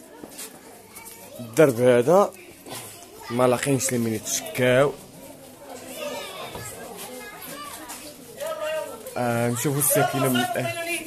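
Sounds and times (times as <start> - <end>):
distant voices of children and adults: 0.0 - 11.0.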